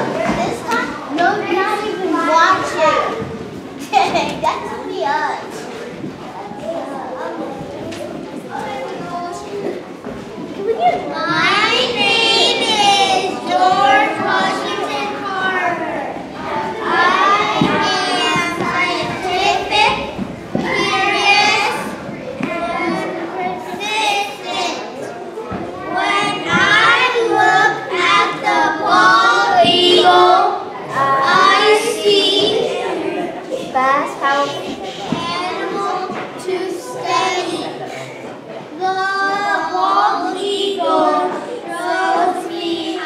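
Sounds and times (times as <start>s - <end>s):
children talking and chattering: 0.0s - 43.0s.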